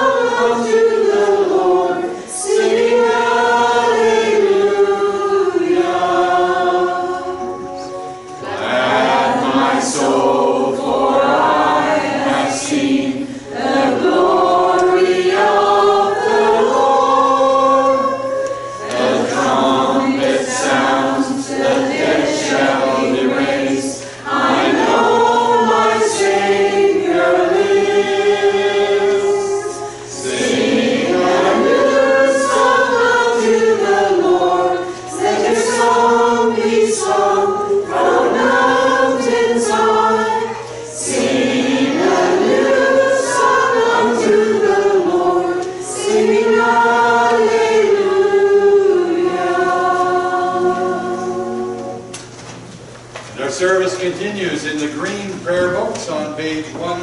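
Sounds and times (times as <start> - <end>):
church choir singing: 0.0 - 52.7.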